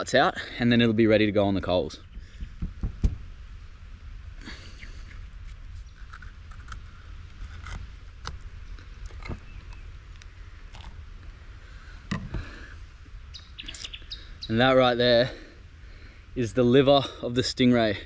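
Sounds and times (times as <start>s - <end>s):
steady low rumble: 0.0s - 18.0s
soft scrapes and small clicks: 5.1s - 11.0s.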